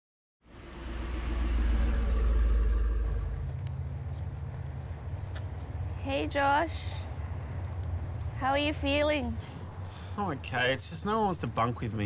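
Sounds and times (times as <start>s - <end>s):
low rumble: 0.4s - 6.0s.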